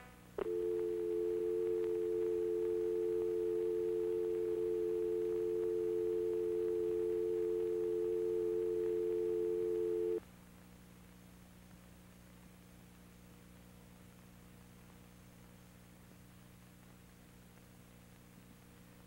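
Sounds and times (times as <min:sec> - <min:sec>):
telephone dial tone: 0:00.4 - 0:10.2.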